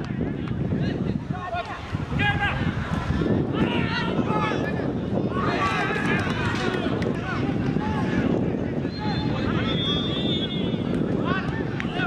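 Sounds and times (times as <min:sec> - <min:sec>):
players calling and shouting: 0:00.0 - 0:12.0
wind rumble on microphone: 0:00.0 - 0:12.0.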